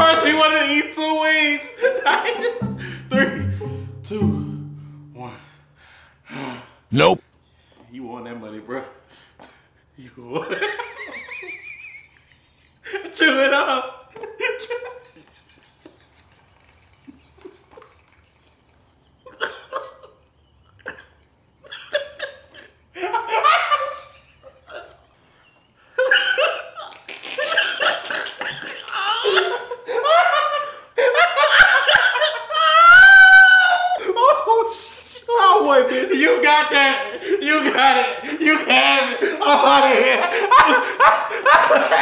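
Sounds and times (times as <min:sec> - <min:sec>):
men laughing: 0:10.4 - 0:34.8, 0:35.6 - 0:42.0.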